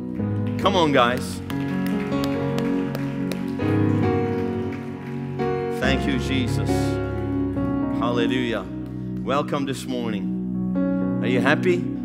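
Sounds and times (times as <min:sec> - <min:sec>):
soft worship music on keyboard: 0:00.0 - 0:12.0.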